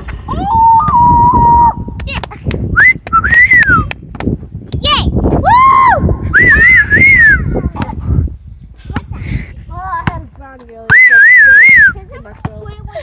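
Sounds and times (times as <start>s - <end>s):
person whistling a tune: 2.8s - 3.8s, 6.4s - 7.4s
basketball bouncing on asphalt: 9.9s - 12.8s.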